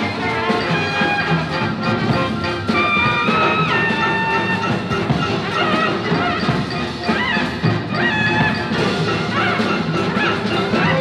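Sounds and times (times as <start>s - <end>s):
orchestra playing: 0.0s - 11.0s.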